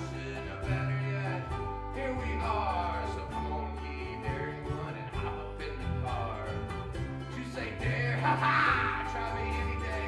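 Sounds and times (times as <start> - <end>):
acoustic bass guitar: 0.0 - 10.0
strummed ukulele: 0.0 - 10.0.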